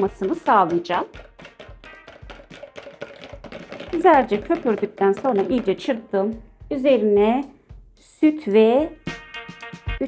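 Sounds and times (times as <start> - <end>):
whisk clicking against bowl: 0.0 - 6.0.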